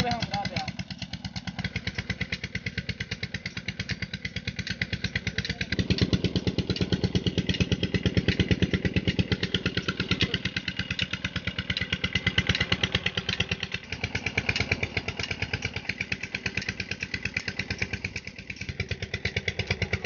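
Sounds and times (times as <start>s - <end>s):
single-cylinder engine running: 0.0s - 20.0s.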